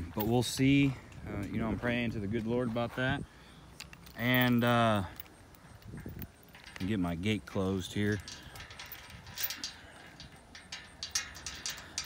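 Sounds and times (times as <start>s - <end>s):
metal gate latch clicking: 8.1s - 12.0s.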